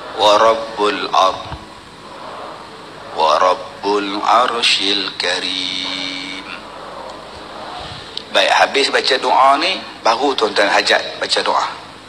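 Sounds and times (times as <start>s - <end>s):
man chanting: 0.0s - 2.4s, 3.0s - 11.9s
background noise: 0.0s - 12.0s.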